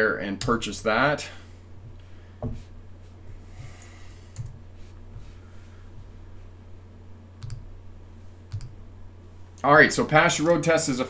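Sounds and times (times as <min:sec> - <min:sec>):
steady low hum: 0:00.0 - 0:11.0
computer mouse clicks: 0:07.4 - 0:07.6, 0:08.5 - 0:08.8.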